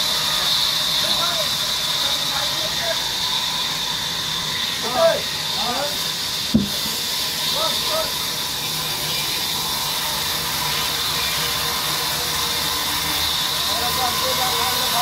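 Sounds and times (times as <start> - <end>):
band saw running: 0.0 - 15.0.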